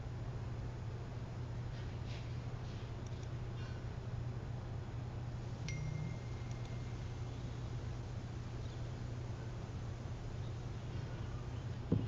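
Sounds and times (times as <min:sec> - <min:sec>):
faint low hum: 0:00.0 - 0:12.0
click: 0:03.0 - 0:03.3, 0:06.5 - 0:06.7
chime-like tone: 0:05.6 - 0:07.2.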